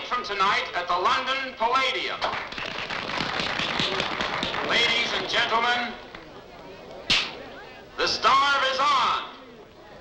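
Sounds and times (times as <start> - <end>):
faint background voices: 3.6 - 8.2, 9.2 - 10.0
sharp crack: 7.0 - 7.4.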